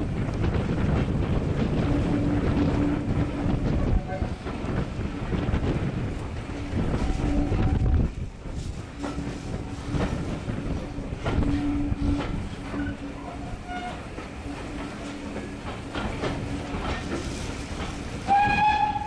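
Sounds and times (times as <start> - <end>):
train wheels clicking over rail joints: 0.0 - 19.0.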